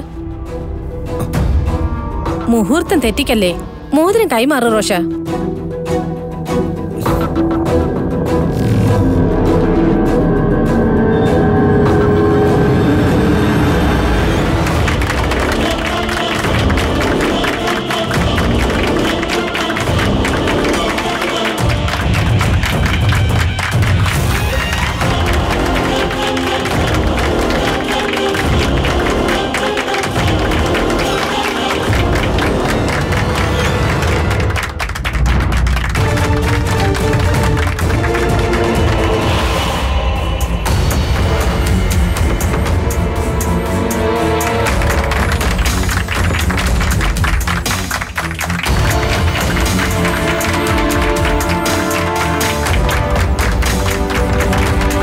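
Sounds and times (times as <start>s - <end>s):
loud soundtrack music: 0.0s - 55.0s
crowd applauding and cheering: 11.3s - 55.0s.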